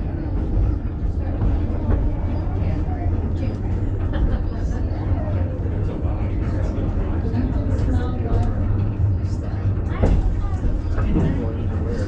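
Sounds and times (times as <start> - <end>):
faint voices: 0.0 - 12.0
railway car rumbling on track: 0.0 - 12.0.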